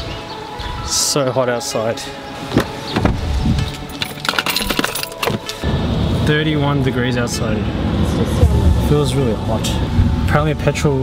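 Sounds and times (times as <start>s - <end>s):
keys jingling: 3.6s - 5.6s.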